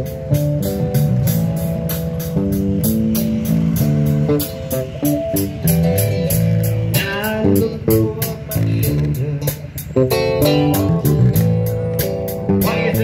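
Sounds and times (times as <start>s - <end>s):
acoustic guitar: 0.0s - 13.0s
bass guitar: 0.0s - 13.0s
high ticking beat: 0.0s - 13.0s.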